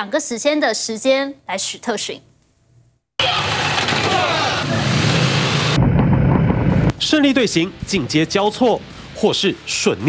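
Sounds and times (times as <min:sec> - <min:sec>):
motorcycle engines revving: 0:03.2 - 0:07.3.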